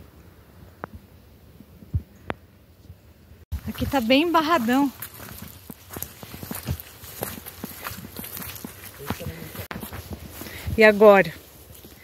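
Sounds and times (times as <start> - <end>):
footsteps on muddy trail: 3.5 - 12.0.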